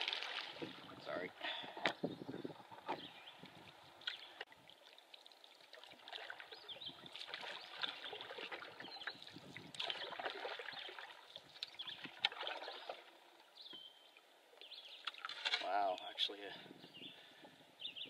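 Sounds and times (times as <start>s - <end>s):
canoe paddle splashing: 0.0s - 15.8s
water dripping: 3.4s - 15.3s.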